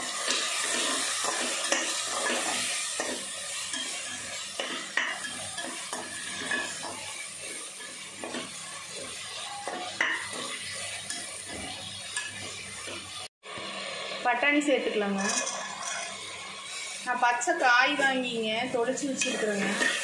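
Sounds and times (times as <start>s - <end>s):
vegetables sizzling: 0.0s - 20.0s
metal spatula scraping metal pot: 0.3s - 13.0s, 15.1s - 16.8s, 19.0s - 20.0s.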